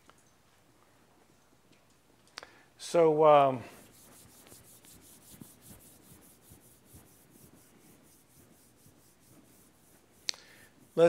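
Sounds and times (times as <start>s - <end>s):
palms rubbing together: 3.5s - 11.0s.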